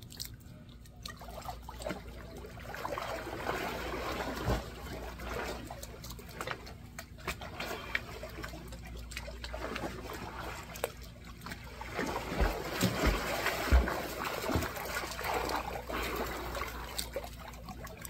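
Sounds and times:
pool water splashing: 0.0s - 18.0s.

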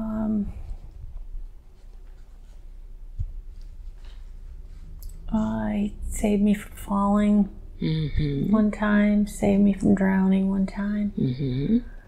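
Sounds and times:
faint scratchy rustling: 0.3s - 5.6s.

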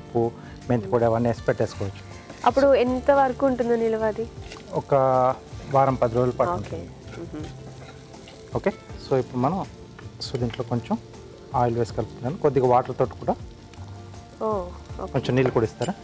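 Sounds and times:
food sizzling in a pan: 0.0s - 16.0s
spatula scraping pan: 1.6s - 3.1s, 4.2s - 8.8s.

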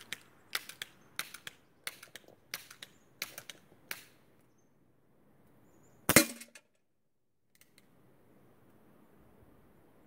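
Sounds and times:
pellet gun shot: 6.1s - 6.6s.

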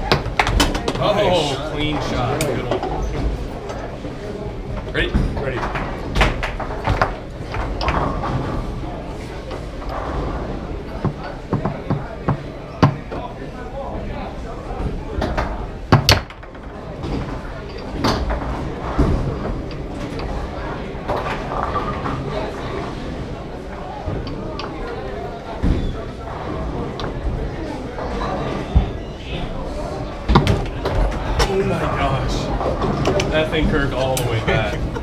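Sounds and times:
foosball ball clacking: 0.0s - 1.2s, 5.6s - 8.8s, 10.8s - 13.2s, 15.2s - 22.3s, 30.2s - 31.7s, 32.5s - 35.0s
foosball rods banging: 0.0s - 1.2s, 1.9s - 13.3s, 14.8s - 35.0s.

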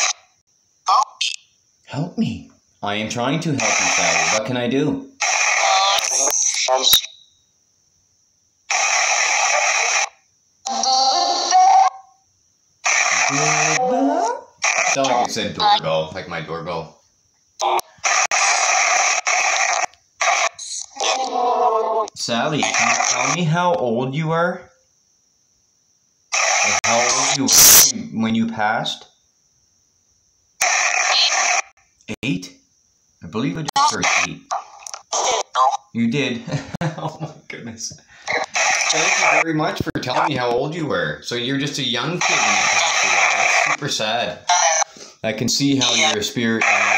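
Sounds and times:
white noise static bursts: 0.0s - 0.2s, 3.5s - 7.0s, 8.7s - 10.2s, 12.8s - 13.8s, 14.6s - 16.0s, 18.0s - 20.9s, 22.3s - 23.5s, 26.3s - 27.9s, 30.6s - 31.8s, 38.3s - 40.3s, 41.8s - 46.9s
man speaking: 1.9s - 5.0s, 15.0s - 16.9s, 22.2s - 24.6s, 26.7s - 29.0s, 38.9s - 44.5s, 45.2s - 46.9s
warbling voice fragments: 3.4s - 7.2s, 8.7s - 10.1s, 12.8s - 16.1s, 17.6s - 23.7s, 26.3s - 28.1s, 30.6s - 31.7s, 33.7s - 35.9s, 38.3s - 40.5s, 41.3s - 46.9s.

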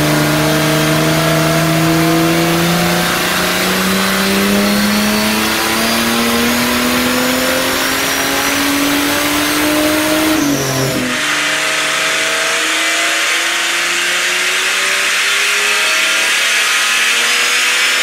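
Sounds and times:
engine revving under load: 0.0s - 18.0s
lighter engine rising in pitch: 0.0s - 18.0s.

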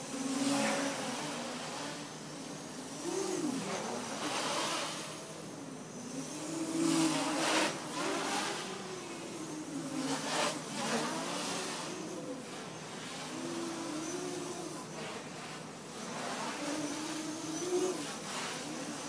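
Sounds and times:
quadcopter motors buzzing: 0.0s - 19.0s.

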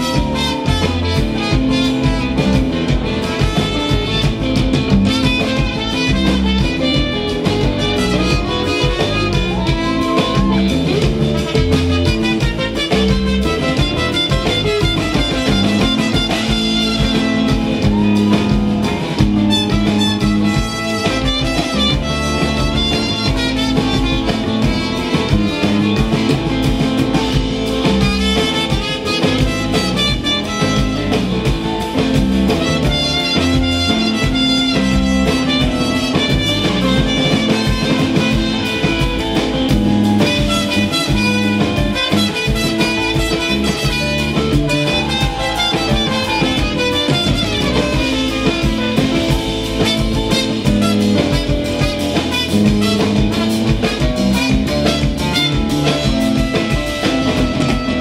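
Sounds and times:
drum kit: 0.0s - 58.0s
electric guitar: 0.0s - 58.0s
trumpet: 0.0s - 58.0s.

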